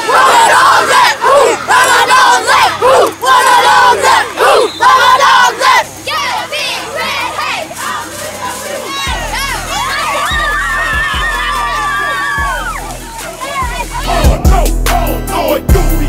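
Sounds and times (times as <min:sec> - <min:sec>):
scattered shouting: 0:00.0 - 0:16.0
young voices chanting together: 0:00.0 - 0:16.0.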